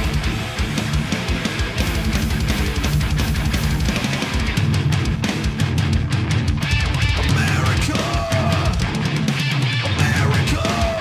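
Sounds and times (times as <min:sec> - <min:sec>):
drum kit with crashing cymbals: 0:00.0 - 0:11.0
heavy metal band playing live: 0:00.0 - 0:11.0.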